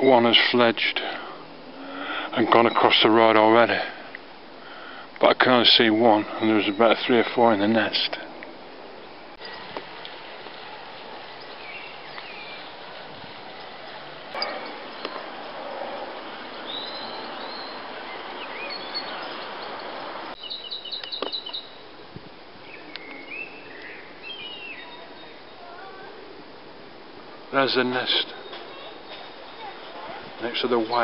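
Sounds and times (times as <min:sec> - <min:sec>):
outdoor background hiss: 0:00.0 - 0:31.0
birds chirping and whistling: 0:14.4 - 0:21.8, 0:22.6 - 0:25.6, 0:30.4 - 0:31.0.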